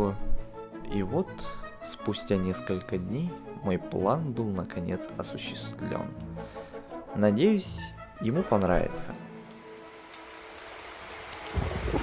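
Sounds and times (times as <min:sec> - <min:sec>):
steady rain: 0:09.3 - 0:12.0.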